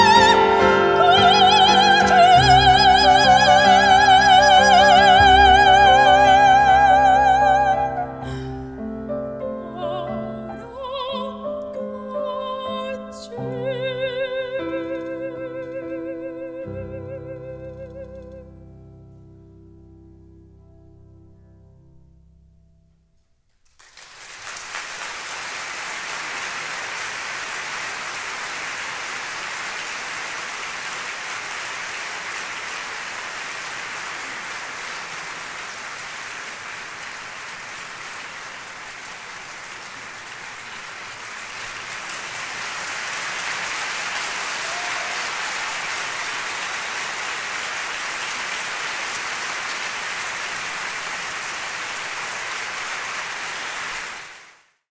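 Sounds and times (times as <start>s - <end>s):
audience applauding: 0.0s - 8.7s, 23.6s - 54.8s.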